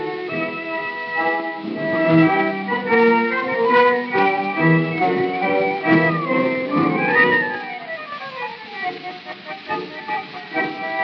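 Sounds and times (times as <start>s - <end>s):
instrumental tango: 0.0s - 11.0s.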